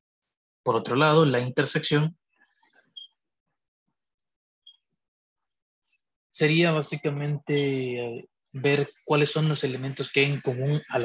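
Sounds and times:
man speaking: 0:06.4 - 0:11.0.

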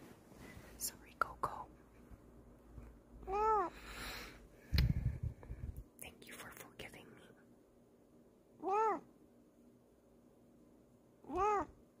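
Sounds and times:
cat meowing: 0:03.3 - 0:03.7, 0:08.6 - 0:09.1, 0:11.2 - 0:11.8.

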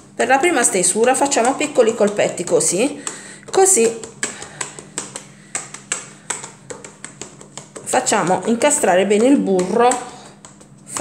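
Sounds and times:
rolling pin tapping dough: 0:00.0 - 0:11.0.

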